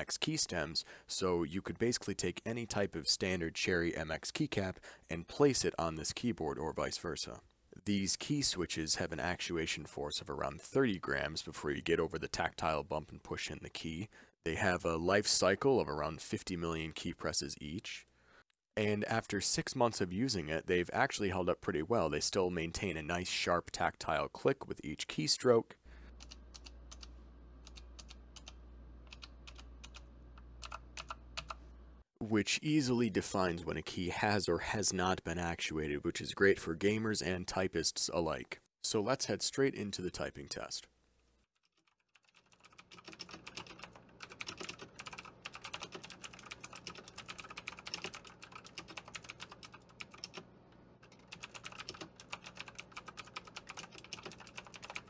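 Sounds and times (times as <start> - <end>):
mechanical keyboard clicks: 30.6 - 31.6, 41.9 - 50.4, 51.2 - 55.0.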